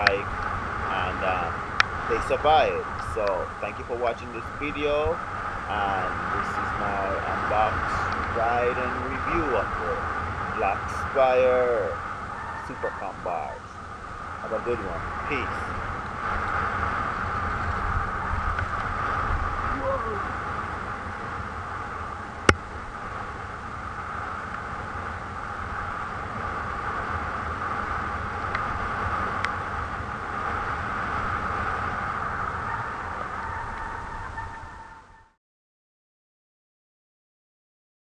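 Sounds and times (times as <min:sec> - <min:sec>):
bike trail noise: 0:00.0 - 0:35.4
wind rumble: 0:00.0 - 0:35.4.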